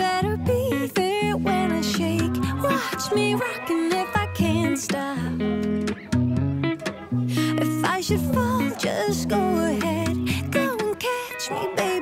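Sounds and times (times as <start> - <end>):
pop song with strummed guitar: 0.0 - 12.0.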